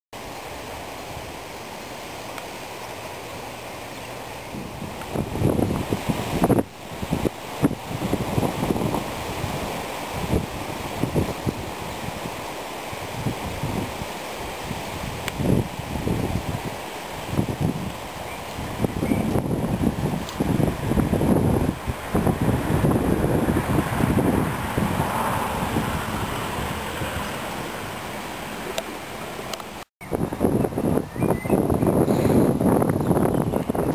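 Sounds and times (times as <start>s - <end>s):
wind buffeting microphone: 4.4s - 33.9s.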